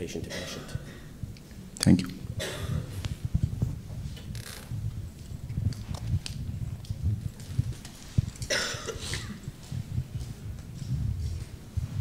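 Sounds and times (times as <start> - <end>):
cough: 0.3 - 1.1, 2.4 - 2.9, 8.5 - 9.4
low rumble of movement: 1.2 - 12.0.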